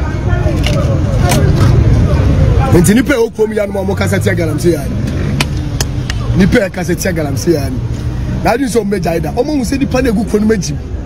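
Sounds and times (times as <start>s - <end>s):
people talking: 0.0s - 5.2s, 5.8s - 7.8s, 8.4s - 10.9s.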